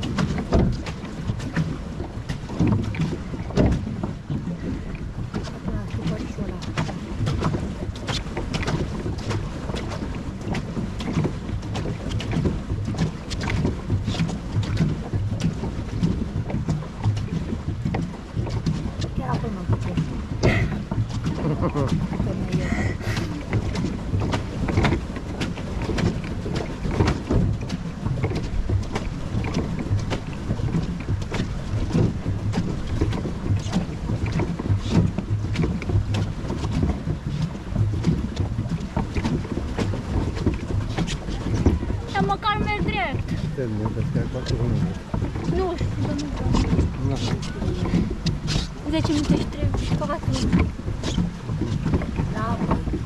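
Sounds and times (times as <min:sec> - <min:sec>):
paddle wheel churning water: 0:00.0 - 0:53.0
wind buffeting microphone: 0:00.0 - 0:53.0.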